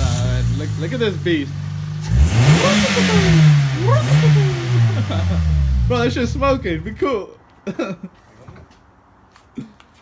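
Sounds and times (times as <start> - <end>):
car engine revving: 0.0 - 6.9.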